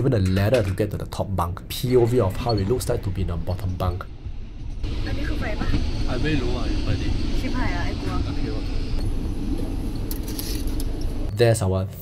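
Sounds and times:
people talking: 0.0s - 4.1s, 5.1s - 8.7s, 11.3s - 12.0s
train rumbling: 1.0s - 11.3s.

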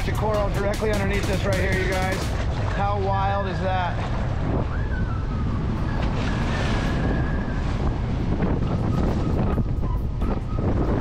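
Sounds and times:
motorboat engine running: 0.0s - 11.0s
water rushing along hull: 0.0s - 11.0s
wind buffeting microphone: 0.0s - 11.0s.

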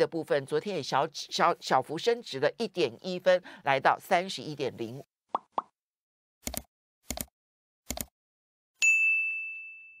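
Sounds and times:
bell ding: 8.8s - 10.0s.

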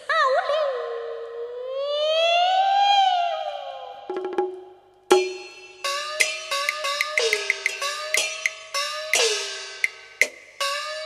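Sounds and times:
woman singing falsetto opera: 0.1s - 4.0s.

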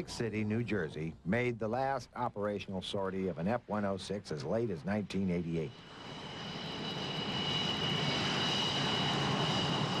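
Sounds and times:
jet engine roar with whine: 2.0s - 10.0s.

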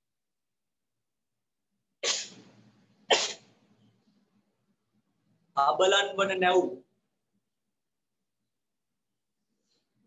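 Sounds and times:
person sneezing: 2.0s - 2.5s, 3.1s - 3.5s.

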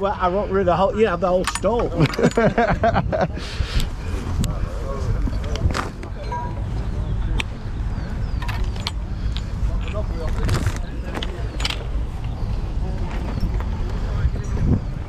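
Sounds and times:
wind buffeting microphone: 0.0s - 15.0s
camera rustling while walking: 8.4s - 14.1s.

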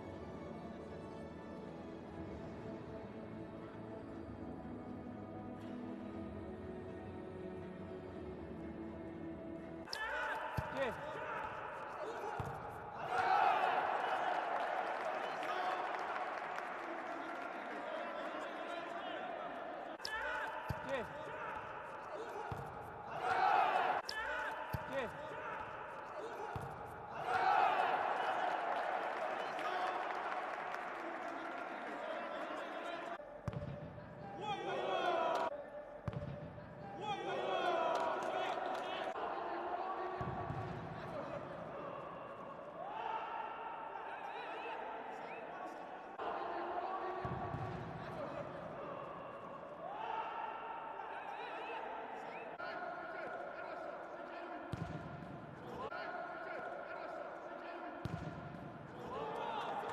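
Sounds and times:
voices in a large hall: 0.0s - 59.9s
ball kicks and thuds: 33.5s - 34.0s, 36.1s - 36.6s.

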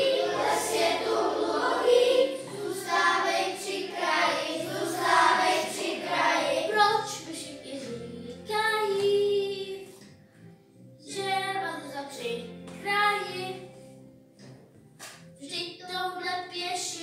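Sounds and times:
children singing: 0.0s - 7.3s
musical accompaniment: 0.0s - 17.0s.

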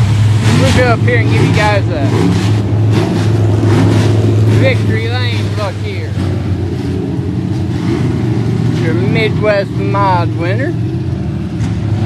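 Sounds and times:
race car engine running: 0.0s - 12.0s.

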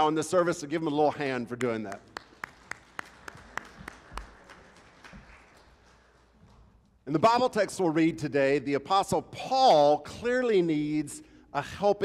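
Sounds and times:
hands clapping in applause: 1.6s - 6.8s.

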